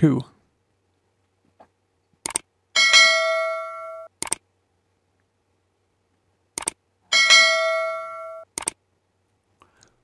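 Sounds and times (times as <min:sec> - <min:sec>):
bright bell ding: 0:07.1 - 0:08.4.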